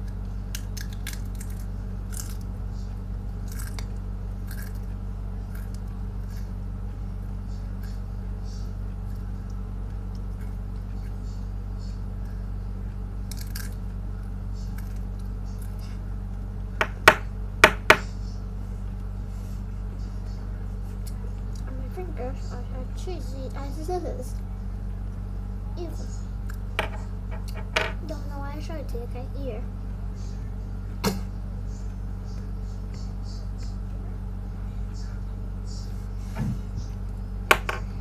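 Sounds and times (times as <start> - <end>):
chewing crunchy cracker: 0.0 - 2.6, 3.4 - 6.6, 13.2 - 15.9
low electrical hum: 0.0 - 38.0.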